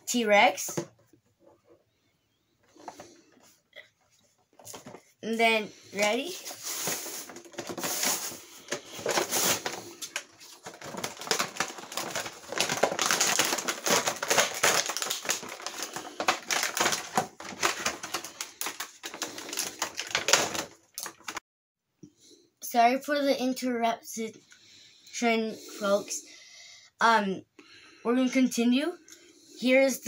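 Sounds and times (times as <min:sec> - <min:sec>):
plastic packaging crinkling: 0:04.4 - 0:05.1, 0:06.0 - 0:21.4.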